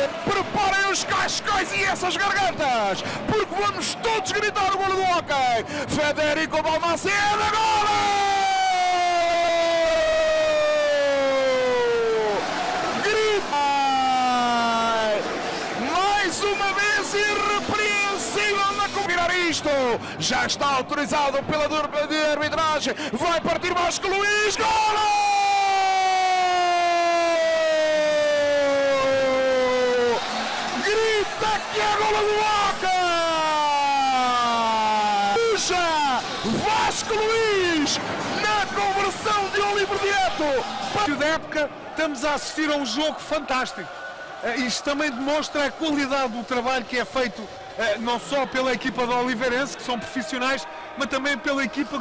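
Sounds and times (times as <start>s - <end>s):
commentator shouting: 0.0s - 12.4s, 13.0s - 47.2s.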